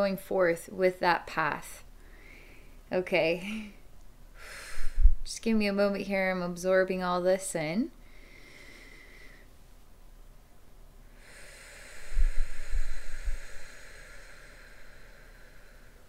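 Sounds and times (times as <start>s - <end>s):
person breathing through the nose: 4.4s - 5.2s, 8.0s - 9.5s, 11.2s - 16.0s
breath puffs on microphone: 11.2s - 16.0s.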